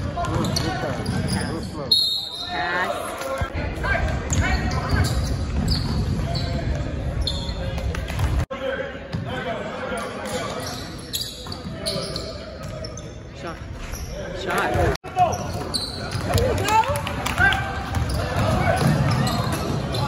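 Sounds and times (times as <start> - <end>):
basketball bouncing on court: 17.8 - 20.0.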